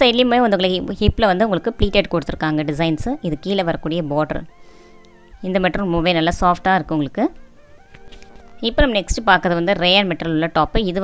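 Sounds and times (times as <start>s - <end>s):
faint background music: 0.0s - 11.0s
person talking: 8.0s - 11.0s.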